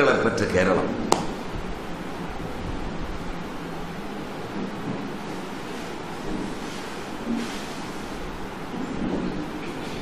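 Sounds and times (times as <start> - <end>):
steady rushing room noise: 0.0 - 10.0.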